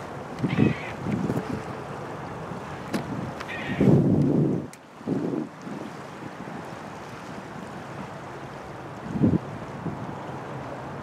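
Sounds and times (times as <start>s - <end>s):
river water: 0.0s - 11.0s
rush of wind: 0.0s - 11.0s
wind buffeting microphone: 0.0s - 11.0s.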